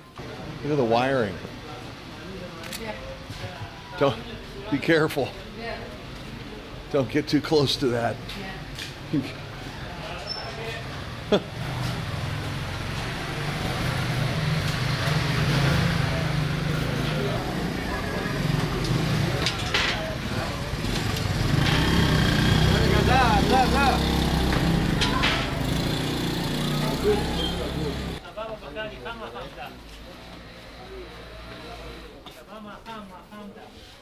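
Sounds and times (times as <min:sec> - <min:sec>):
chatter of many voices: 0:00.0 - 0:34.0
motorcycle engine passing: 0:10.6 - 0:28.2.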